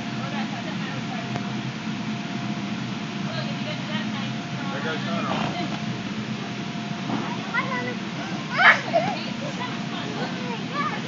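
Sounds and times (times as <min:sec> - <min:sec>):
blower fan humming: 0:00.0 - 0:11.0
faint voices: 0:03.3 - 0:05.8.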